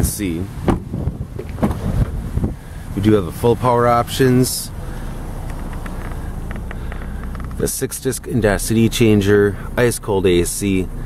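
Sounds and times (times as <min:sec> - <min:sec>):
wind buffeting microphone: 0:00.0 - 0:03.5
dull bumps: 0:00.6 - 0:02.6, 0:04.8 - 0:09.4.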